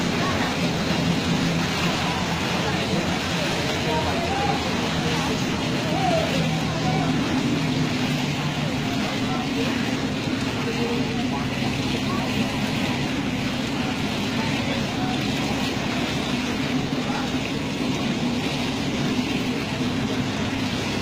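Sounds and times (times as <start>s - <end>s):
steady rain falling: 0.0s - 21.0s
vehicle engine hum: 0.0s - 21.0s.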